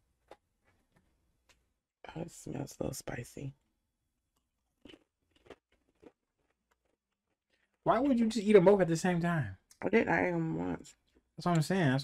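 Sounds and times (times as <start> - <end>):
chewing potato crisps: 4.7 - 7.8.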